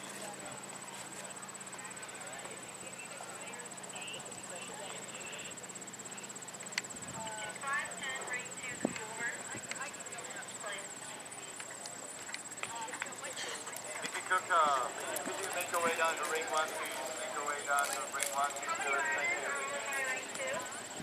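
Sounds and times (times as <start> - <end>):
steady high whine: 0.0 - 21.0
voices talking: 0.0 - 21.0.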